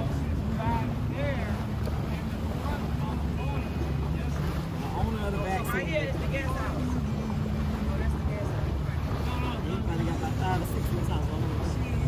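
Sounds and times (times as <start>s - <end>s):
boat motor running: 0.0s - 12.0s
water noise: 0.0s - 12.0s
wind: 0.0s - 12.0s.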